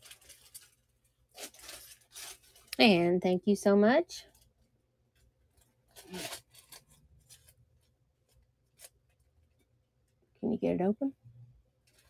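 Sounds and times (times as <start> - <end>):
rustling and scraping handling: 0.0 - 3.0, 4.2 - 10.2, 11.8 - 12.0.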